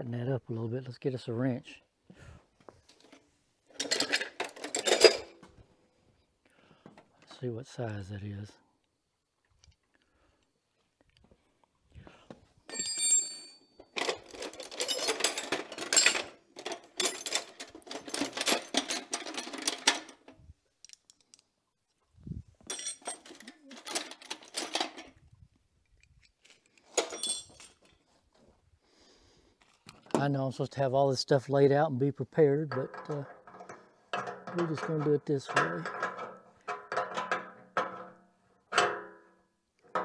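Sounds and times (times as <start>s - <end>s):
metal hand tools clinking: 3.8s - 5.4s, 12.7s - 20.2s, 22.7s - 25.0s, 26.4s - 28.0s.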